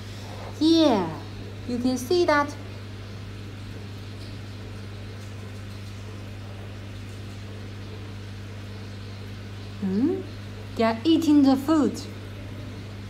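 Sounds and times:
aquarium pump humming: 0:00.0 - 0:13.0.

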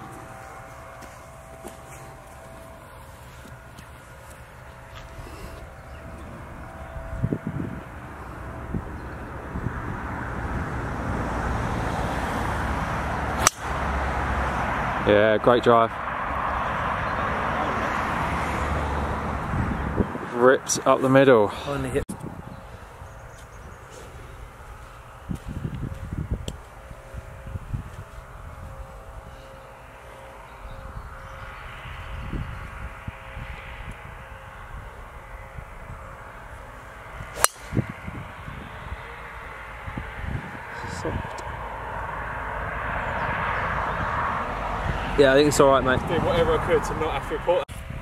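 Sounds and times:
low outdoor rumble: 0:00.0 - 0:48.0
golf club striking ball: 0:13.4 - 0:13.8, 0:37.3 - 0:37.8.

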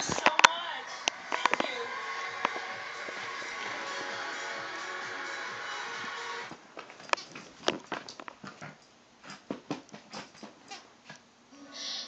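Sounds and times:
audience sound: 0:00.0 - 0:06.6
tv show music: 0:00.0 - 0:06.6.

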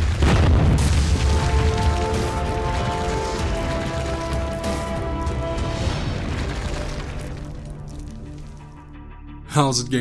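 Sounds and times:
wall bursting boom and crash: 0:00.0 - 0:02.1.

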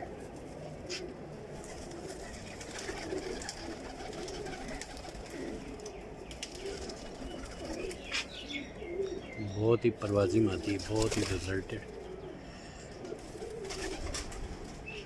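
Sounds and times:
pigeons cooing: 0:00.0 - 0:15.0.

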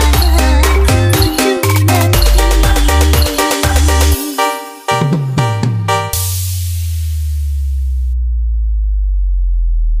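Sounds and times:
house music track: 0:00.0 - 0:04.5
deep electronic bass note: 0:06.2 - 0:10.0.

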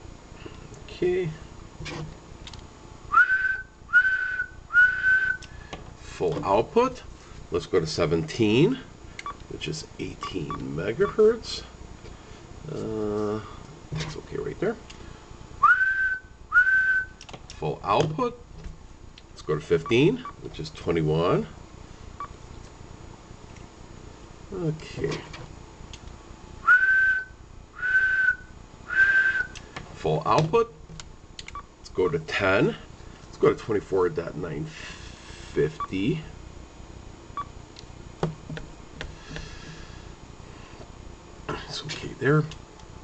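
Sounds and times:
person whistling short notes: 0:03.1 - 0:05.5, 0:15.6 - 0:17.2, 0:26.6 - 0:29.6.

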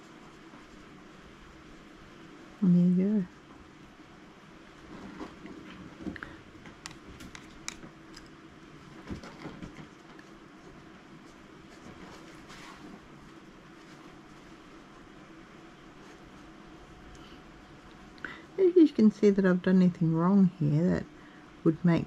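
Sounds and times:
faint room hum: 0:00.0 - 0:22.0.

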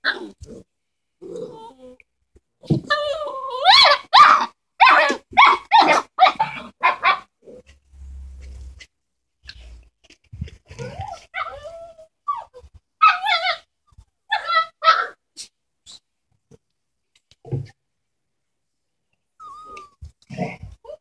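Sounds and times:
puppies barking and yelping: 0:02.9 - 0:07.3, 0:14.3 - 0:15.2.

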